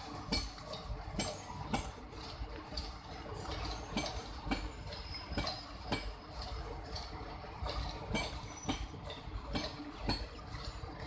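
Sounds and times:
train wheels clacking over rail joints: 0.0s - 11.0s.

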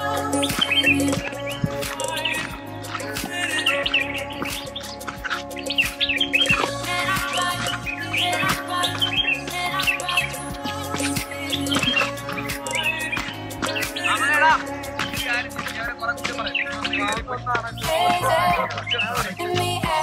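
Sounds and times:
birds chirping: 0.0s - 20.0s
instrumental music: 0.0s - 20.0s.

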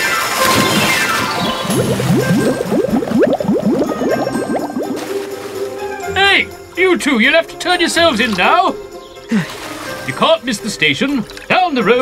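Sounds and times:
music: 0.0s - 12.0s
cartoon splash: 0.2s - 5.9s
rising bubbling blips: 0.5s - 5.4s.

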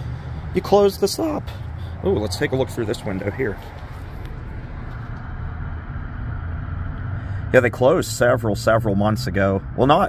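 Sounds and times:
outdoor low rumble: 0.0s - 10.0s.

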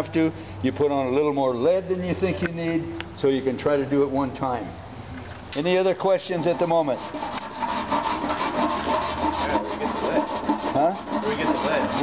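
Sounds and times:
hand tool scraping metal: 6.3s - 12.0s.

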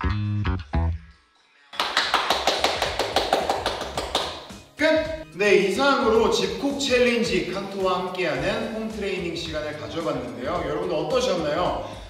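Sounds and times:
person clapping hands rapidly: 1.8s - 4.7s.

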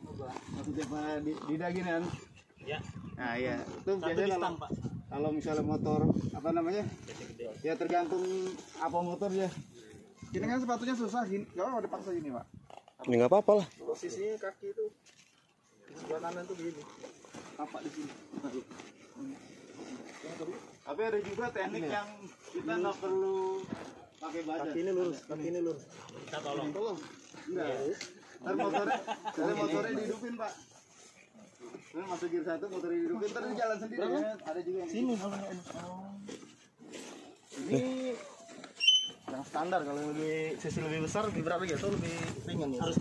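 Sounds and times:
men talking: 0.0s - 15.0s, 15.8s - 36.5s, 37.5s - 38.6s, 39.2s - 43.0s
people speaking: 37.6s - 38.4s, 39.3s - 43.0s.

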